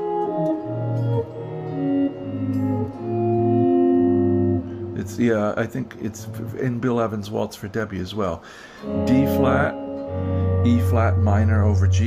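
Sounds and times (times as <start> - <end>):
electric guitar chords: 0.0 - 6.9, 8.5 - 12.0.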